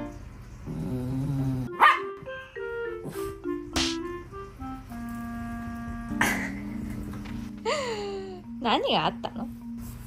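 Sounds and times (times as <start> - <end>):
small dog barking: 1.8 - 2.1.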